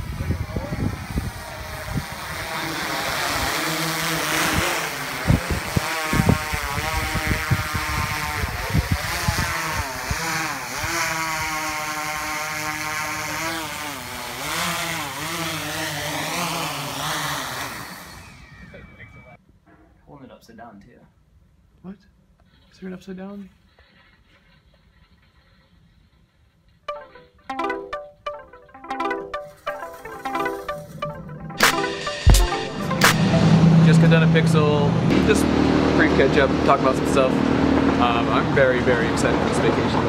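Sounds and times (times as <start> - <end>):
wind bumps on microphone: 0.0 - 2.6, 4.4 - 10.2.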